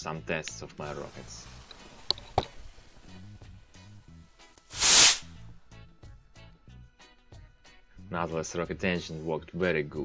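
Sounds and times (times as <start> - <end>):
background music with repeating notes: 0.0 - 10.0
rocket motor rushing hiss: 0.9 - 3.2, 4.7 - 5.4.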